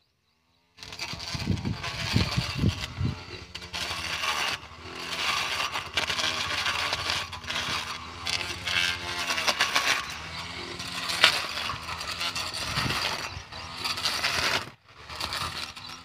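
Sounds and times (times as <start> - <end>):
blade rasping through weeds: 0.8 - 16.0
grass cutter motor running: 0.8 - 16.0.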